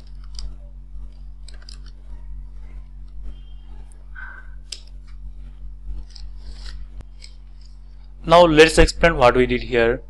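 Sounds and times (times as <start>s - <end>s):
low electrical hum: 0.0s - 10.0s
faint rustling scrapes: 2.0s - 8.2s.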